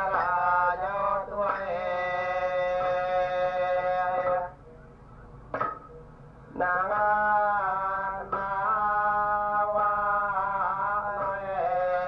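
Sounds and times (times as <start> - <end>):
man singing unaccompanied chant: 0.0 - 4.6, 6.5 - 12.0
steady low hum: 0.0 - 12.0.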